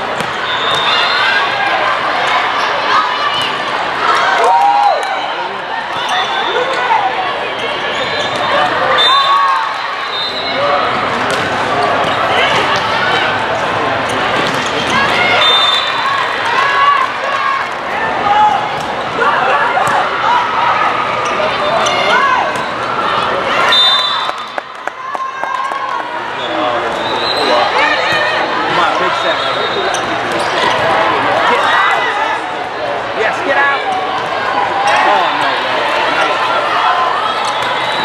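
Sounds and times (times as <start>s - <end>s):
shouts and chatter echoing: 0.0s - 38.0s
volleyball hits: 11.2s - 13.0s.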